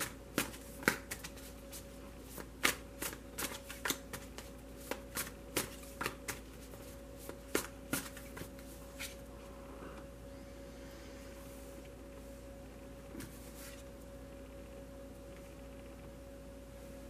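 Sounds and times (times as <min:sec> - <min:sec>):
cards being shuffled by hand: 0:00.0 - 0:09.2.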